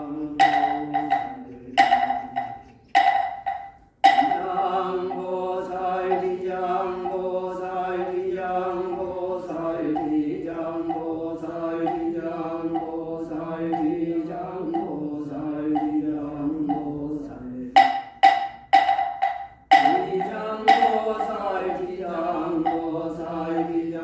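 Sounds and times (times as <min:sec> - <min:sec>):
person chanting: 0:00.0 - 0:03.4, 0:04.0 - 0:17.9, 0:19.7 - 0:24.0
ringing percussion strokes: 0:00.0 - 0:24.0.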